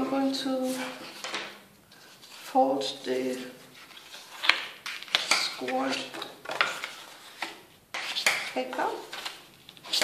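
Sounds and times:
paper rustling and crinkling: 3.4s - 10.0s.

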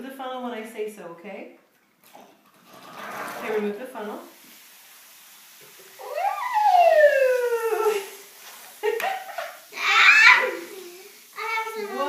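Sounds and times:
child exclaiming whoa: 6.0s - 8.1s, 9.8s - 12.0s.

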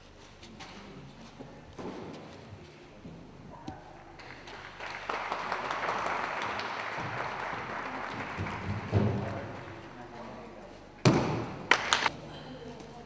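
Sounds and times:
audience clapping in a hall: 4.2s - 9.8s, 11.6s - 12.1s.

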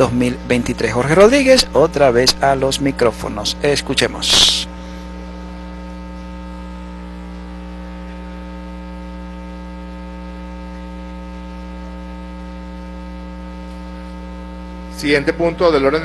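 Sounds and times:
buzzy electrical mains hum: 0.0s - 16.0s.

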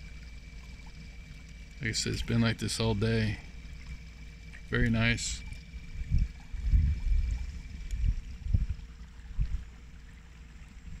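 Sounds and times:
trolling motor hum: 0.0s - 11.0s
water lapping against boat hull: 0.0s - 11.0s.

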